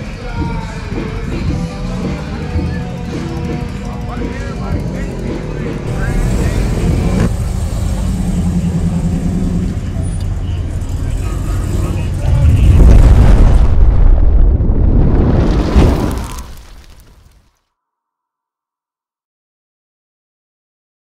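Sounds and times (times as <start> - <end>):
car engine rumbling: 1.2 - 17.0.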